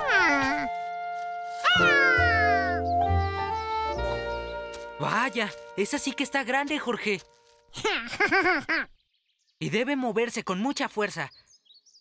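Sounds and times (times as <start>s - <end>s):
soft background music: 0.0s - 7.6s
cartoon monkey call: 1.6s - 2.9s.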